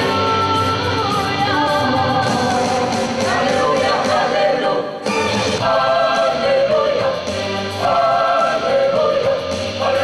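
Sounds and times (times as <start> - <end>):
woman singing lead: 0.0 - 5.0
choir singing in harmony: 0.0 - 10.0.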